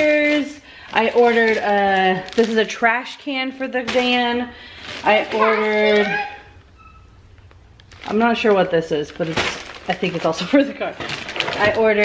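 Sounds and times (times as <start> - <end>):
woman speaking: 0.0 - 6.6, 8.0 - 11.0, 11.6 - 12.0.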